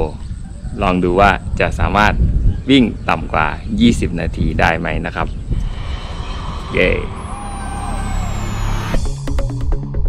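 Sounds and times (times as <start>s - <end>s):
low rumble with gliding high tone: 4.7s - 9.2s
music: 5.6s - 10.0s.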